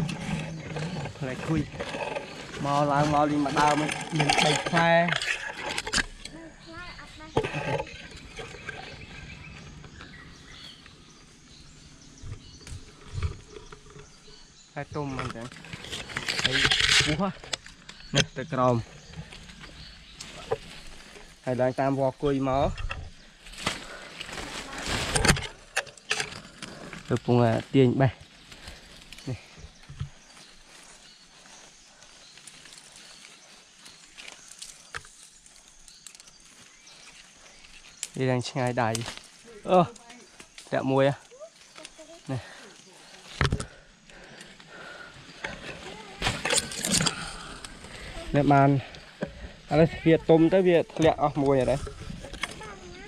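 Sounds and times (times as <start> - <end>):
leaves rustling: 0.0 - 53.0
branches snapping and knocking: 22.7 - 27.4, 32.4 - 40.8, 45.3 - 48.5.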